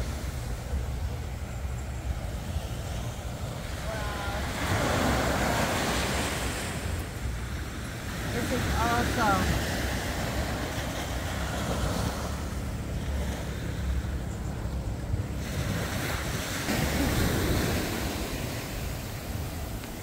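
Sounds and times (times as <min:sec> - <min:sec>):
small waves washing onto sand: 0:00.0 - 0:20.0
wind rumbling on microphone: 0:00.0 - 0:20.0.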